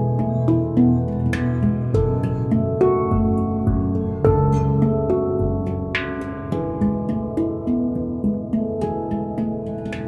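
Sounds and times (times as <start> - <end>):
handpan melody: 0.0 - 10.0.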